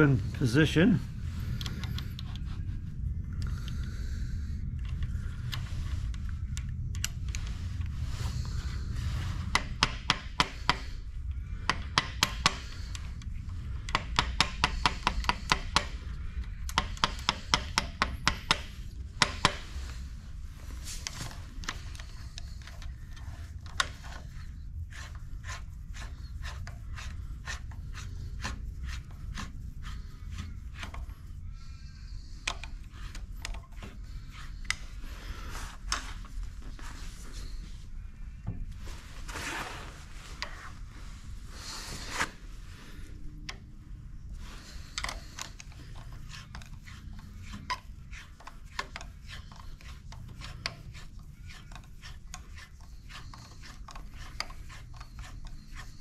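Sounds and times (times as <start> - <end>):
steady low hum: 0.0 - 56.0
screwdriver clicking and scraping: 9.5 - 11.0, 11.6 - 20.0, 20.8 - 31.1, 32.2 - 35.0, 40.3 - 40.8, 44.5 - 56.0.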